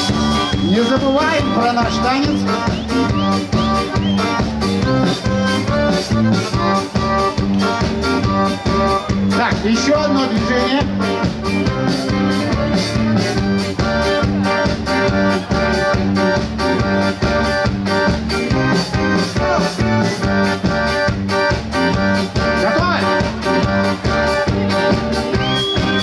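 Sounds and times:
drum kit steady beat: 0:00.0 - 0:26.0
pop-rock band playing: 0:00.0 - 0:26.0.

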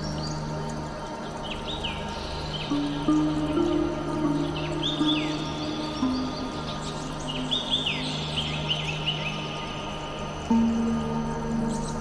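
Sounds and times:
ambient meditation music: 0:00.0 - 0:12.0
birds chirping: 0:00.0 - 0:12.0.

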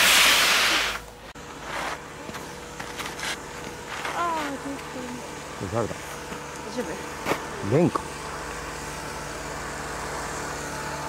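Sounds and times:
skis scraping across snow: 0:00.0 - 0:04.6.

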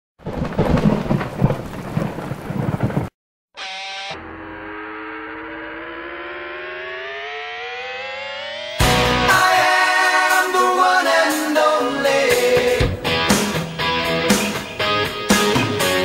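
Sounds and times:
crackling thunder: 0:00.2 - 0:03.1
rising sustained tone: 0:03.6 - 0:10.5.

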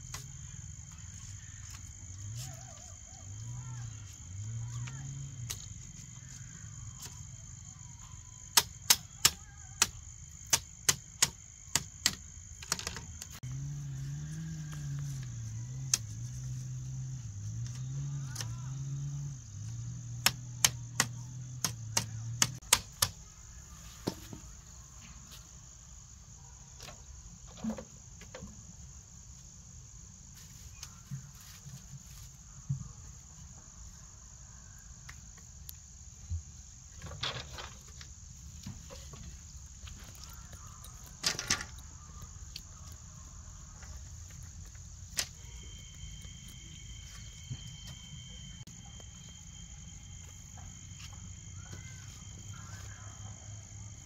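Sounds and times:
insects droning: 0:00.0 - 0:54.0
bamboo slats clacking: 0:08.5 - 0:13.4, 0:19.7 - 0:23.2.

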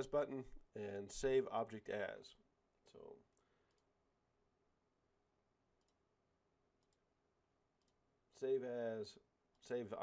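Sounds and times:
faint computer mouse clicks: 0:03.3 - 0:03.9, 0:05.8 - 0:06.0, 0:06.8 - 0:07.0, 0:07.8 - 0:08.0.

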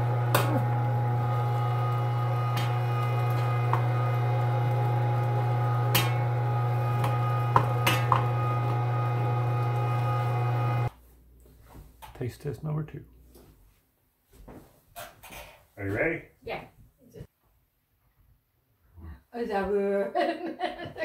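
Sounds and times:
electric meat grinder humming: 0:00.0 - 0:10.9.

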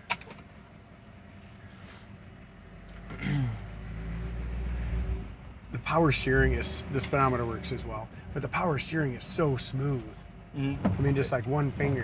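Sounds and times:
car engine idling and pulling away: 0:00.0 - 0:12.0.

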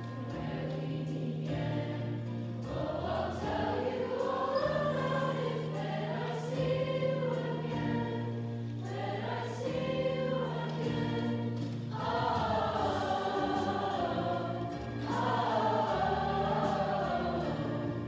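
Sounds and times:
choir singing in parts: 0:00.0 - 0:18.0.

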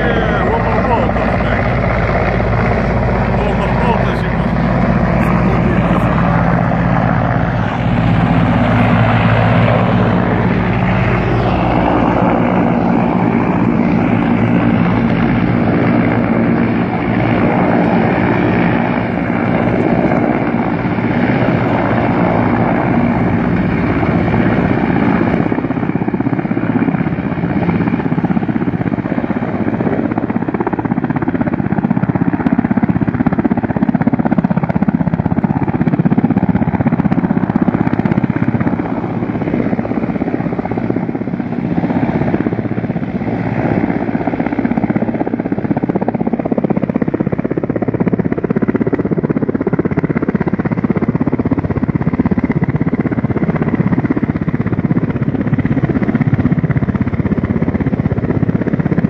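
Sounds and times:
helicopter rotor and engine: 0:00.0 - 0:59.0.

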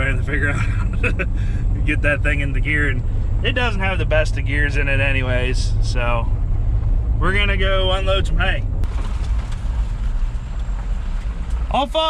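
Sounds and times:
road noise: 0:00.0 - 0:12.0
truck engine rumble: 0:00.0 - 0:12.0.

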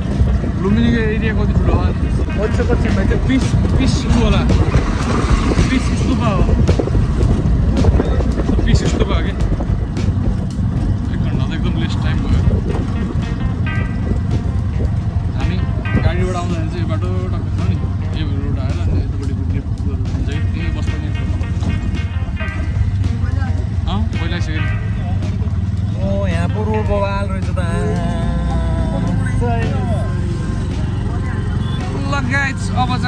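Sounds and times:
rickshaw engine humming: 0:00.0 - 0:33.0
song with singing: 0:27.5 - 0:32.0.

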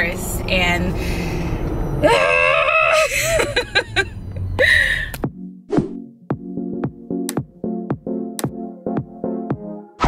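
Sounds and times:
woman squealing excitedly: 0:02.0 - 0:03.3.

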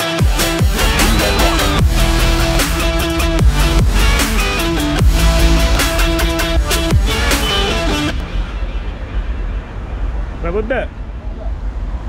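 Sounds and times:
low rumble of traffic: 0:00.7 - 0:12.0.

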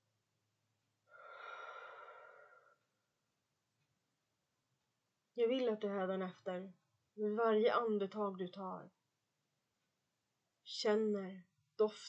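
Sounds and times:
woman breathing out: 0:01.1 - 0:02.8.

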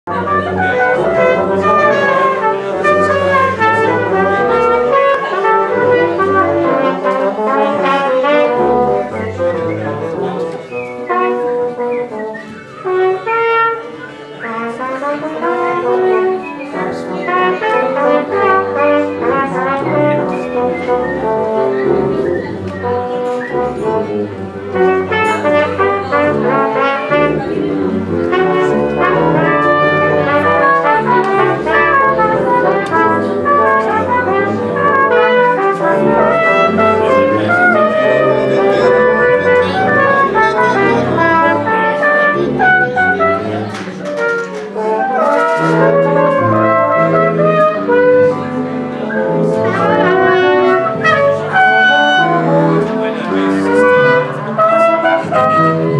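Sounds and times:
brass ensemble music: 0:00.0 - 0:55.9.

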